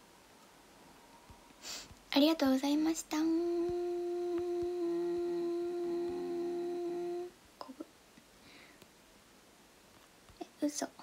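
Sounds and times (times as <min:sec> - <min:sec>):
woman humming: 0:02.7 - 0:07.9.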